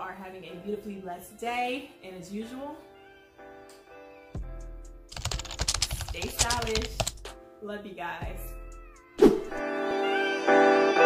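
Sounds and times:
background music: 0.0 - 11.0
keyboard typing clicks: 5.1 - 7.3.

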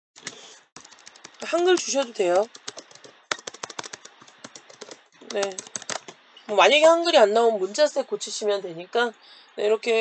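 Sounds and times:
typing on computer keyboard: 0.2 - 6.2.

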